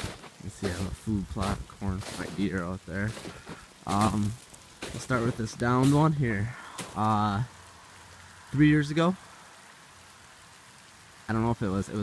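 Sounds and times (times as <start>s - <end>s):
person speaking: 0.0s - 7.6s, 11.3s - 12.0s
faint outdoor hiss: 0.0s - 12.0s.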